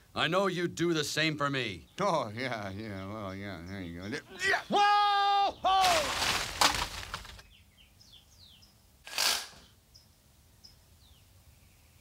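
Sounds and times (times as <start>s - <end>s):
leaves and branches crashing: 5.7s - 7.4s
branch snapping: 5.8s - 7.4s.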